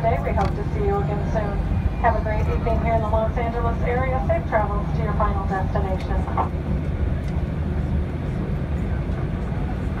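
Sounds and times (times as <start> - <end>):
aircraft cabin low rumble: 0.0 - 10.0.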